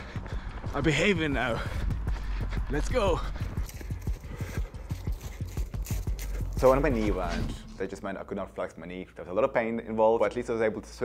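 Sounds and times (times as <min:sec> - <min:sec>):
running footsteps: 0:00.0 - 0:07.6.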